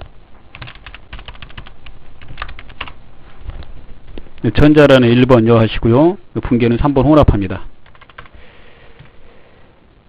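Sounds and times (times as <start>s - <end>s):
typing on computer keyboard: 0.5s - 3.0s, 7.8s - 8.4s.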